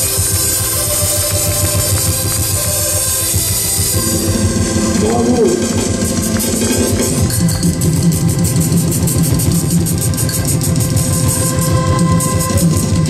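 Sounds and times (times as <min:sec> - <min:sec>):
accordions playing a tune: 0:00.0 - 0:13.0
steady beat: 0:00.0 - 0:13.0.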